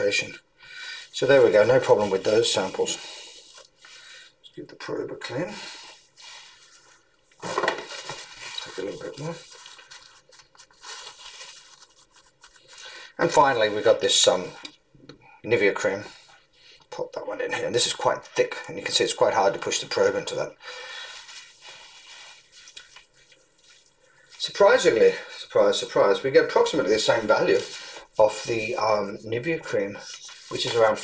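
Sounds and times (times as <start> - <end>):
paper tissue rustling and rubbing: 1.2 - 3.9, 5.3 - 14.1, 19.9 - 31.0
soft squish: 21.1 - 24.5.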